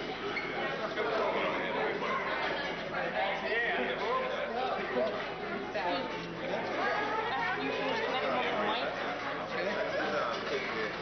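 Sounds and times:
crowd chatter: 0.0 - 11.0.

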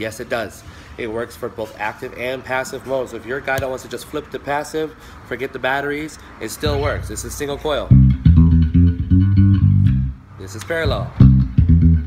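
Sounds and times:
electric bass plucked notes: 6.6 - 10.3, 10.9 - 12.0.

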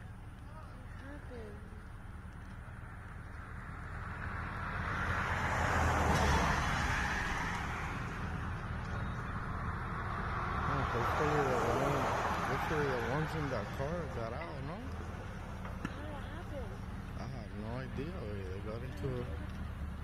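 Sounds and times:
car passing by: 3.5 - 20.0.

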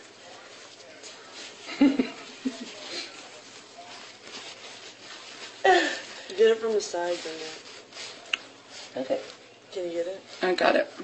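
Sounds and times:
low room hum: 0.0 - 11.0
person chuckling: 1.7 - 3.0.

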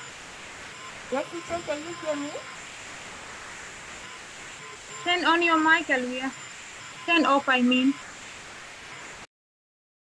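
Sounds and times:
vacuum cleaner running: 0.0 - 9.3.

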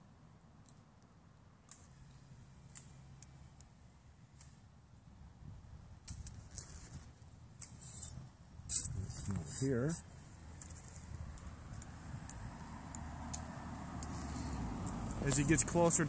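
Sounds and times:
small clicks and rustles: 6.0 - 9.7, 10.5 - 15.5.

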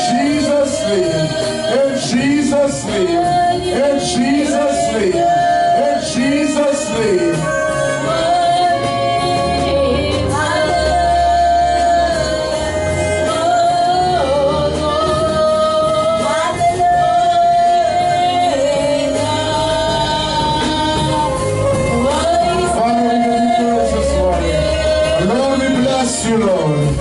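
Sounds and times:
band with steady bass: 0.0 - 27.0.

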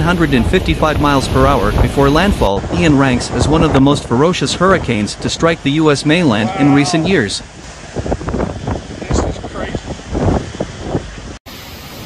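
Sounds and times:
wind buffeting microphone: 0.0 - 11.4.

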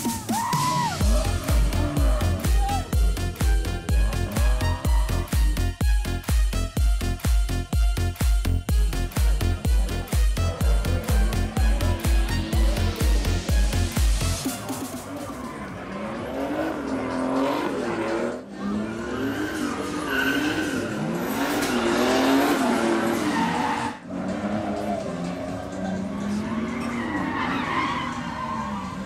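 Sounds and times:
car engines revving: 0.0 - 29.0
tyres skidding: 0.0 - 29.0.

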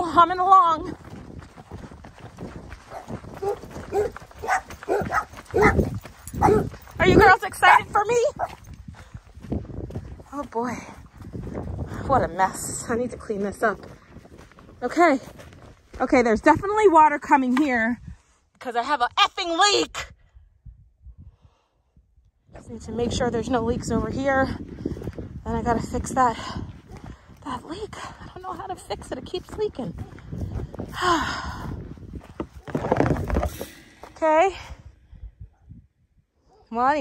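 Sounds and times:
dogs barking: 2.9 - 8.6.

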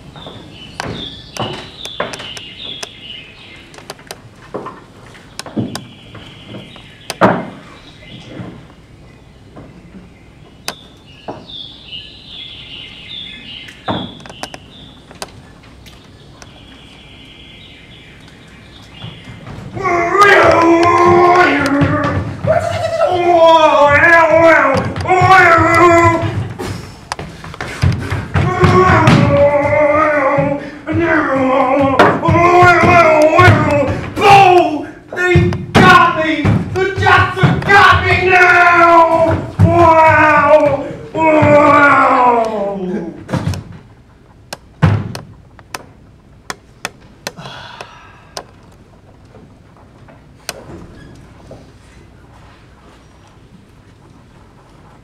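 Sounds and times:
dull footfalls: 0.0 - 3.0, 3.6 - 8.8, 18.7 - 43.9, 44.6 - 47.6
running feet on wooden stage: 0.0 - 11.6, 18.4 - 46.0
sharp clicks: 3.7 - 4.2.

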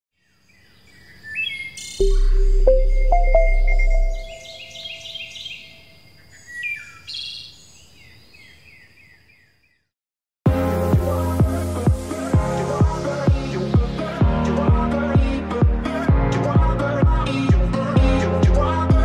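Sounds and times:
birds chirping and trilling: 0.2 - 9.8
short rising jingle: 2.0 - 5.2.

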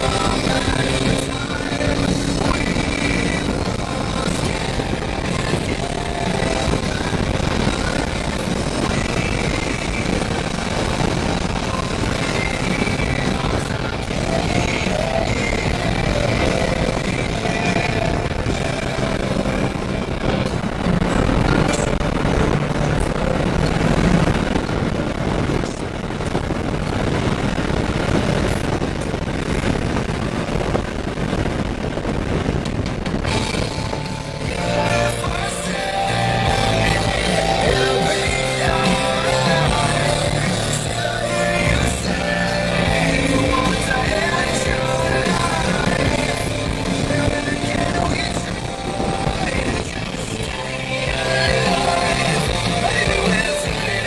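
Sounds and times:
car engine and wind rush: 0.0 - 54.0
road noise: 0.0 - 54.0.

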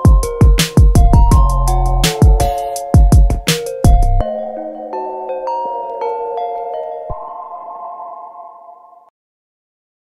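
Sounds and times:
held synthesizer chord: 1.1 - 9.1.

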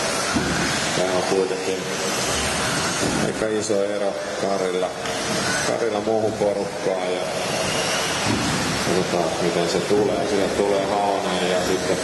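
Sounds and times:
motor whine: 0.0 - 12.0
rc cars rushing: 0.0 - 12.0.

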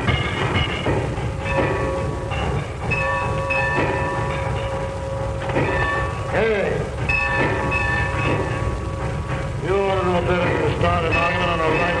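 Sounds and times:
steam escaping: 0.0 - 12.0
steam locomotive low rumble: 0.0 - 12.0.

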